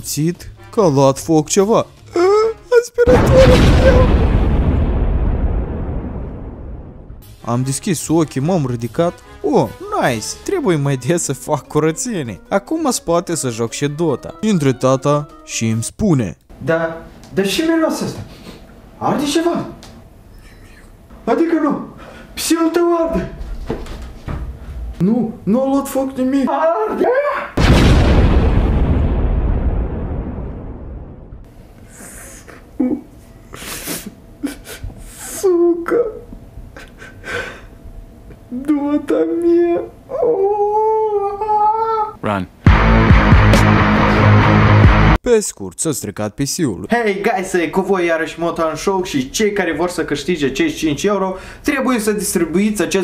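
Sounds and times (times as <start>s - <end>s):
explosion blast: 3.1s - 7.4s, 27.6s - 31.5s.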